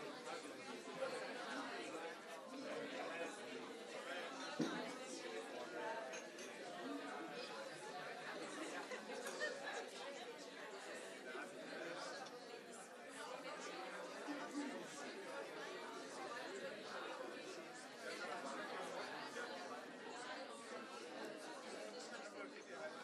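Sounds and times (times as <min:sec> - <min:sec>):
chatter of many people: 0:00.0 - 0:23.0.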